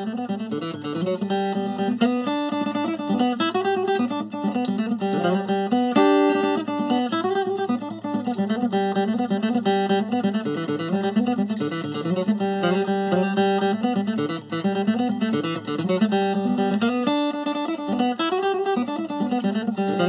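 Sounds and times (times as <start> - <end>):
acoustic guitar picked tune: 0.0 - 20.0.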